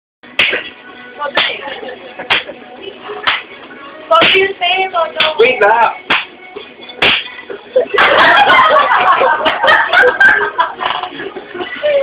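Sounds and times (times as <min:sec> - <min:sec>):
sharp hand slaps: 0:00.4 - 0:00.7, 0:02.3 - 0:02.5, 0:03.2 - 0:03.5, 0:04.2 - 0:04.4, 0:05.2 - 0:05.4, 0:06.1 - 0:06.4, 0:07.0 - 0:07.3.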